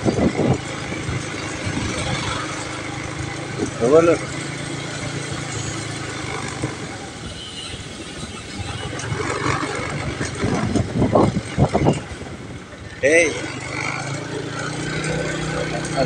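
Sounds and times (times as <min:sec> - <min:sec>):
vehicle engine humming: 0:00.0 - 0:16.0
people's voices: 0:12.9 - 0:16.0.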